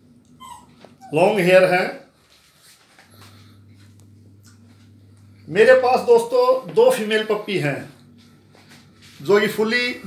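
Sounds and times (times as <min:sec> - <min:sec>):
steady low hum: 0:00.0 - 0:10.0
rustling of puppy being handled: 0:00.7 - 0:03.4.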